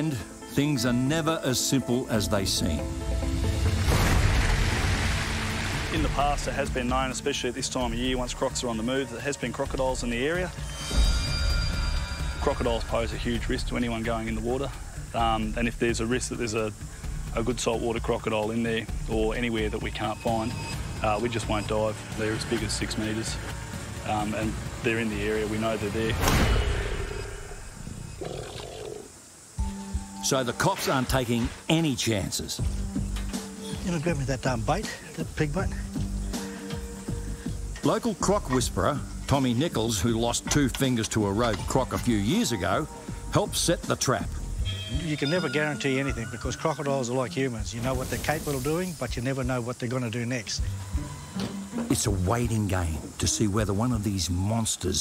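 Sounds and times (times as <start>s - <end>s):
heavy splashing of water: 3.5s - 6.7s
crocodile growling: 28.2s - 29.2s.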